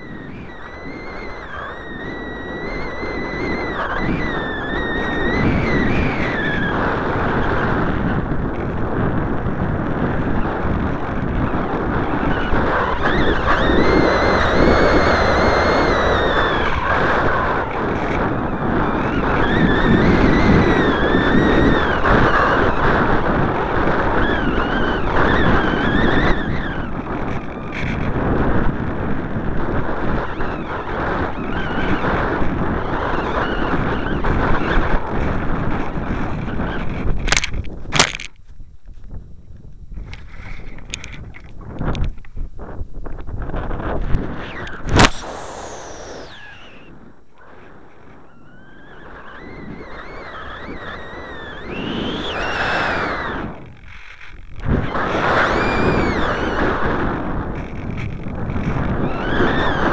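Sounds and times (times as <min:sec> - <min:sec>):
whistle rising and falling in pitch: 0:00.0 - 0:06.8, 0:12.2 - 0:18.1, 0:44.4 - 0:53.6, 0:55.4 - 0:56.7
airflow rushing over microphone: 0:00.0 - 0:24.2, 0:43.8 - 0:59.9.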